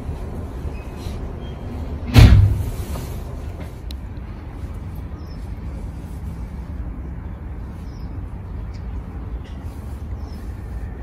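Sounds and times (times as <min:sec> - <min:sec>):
low rumble inside a train: 0:00.0 - 0:11.0
loud thump: 0:02.1 - 0:02.8.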